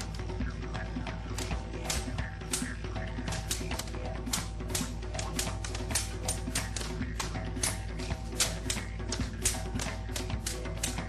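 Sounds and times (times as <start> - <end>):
folk dance music with drone: 0.0 - 11.0.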